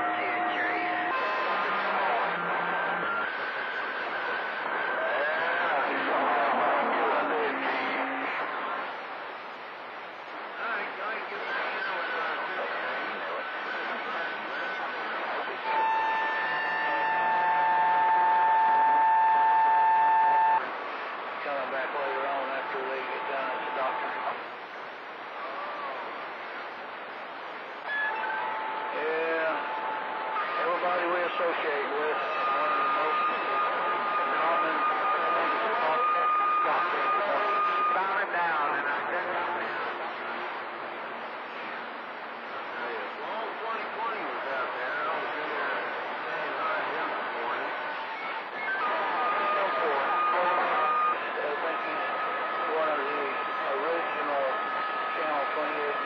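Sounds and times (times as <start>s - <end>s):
radio whistle tones: 0.0s - 8.6s, 10.6s - 24.5s, 27.8s - 39.9s, 42.8s - 56.0s
garbled radio voices: 0.0s - 56.0s
radio static hiss: 0.0s - 56.0s.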